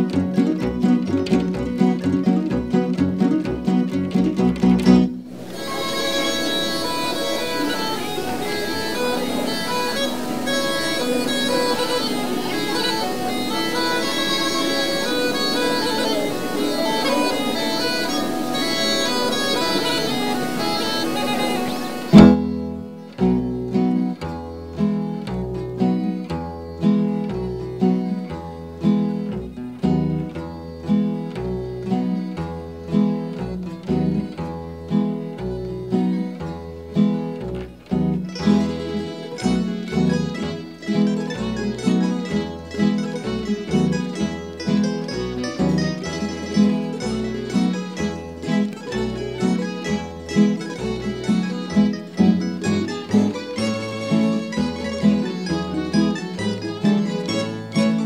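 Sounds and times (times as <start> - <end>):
plucked string band tremolo: 0.0 - 58.0
bagpipe playing: 5.3 - 23.2, 38.1 - 58.0.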